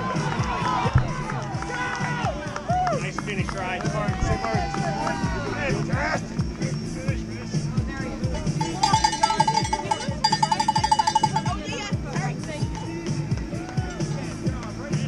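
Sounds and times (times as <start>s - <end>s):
background music: 0.0s - 15.0s
crowd voices: 0.0s - 15.0s
cowbell shaken rapidly: 8.5s - 13.0s.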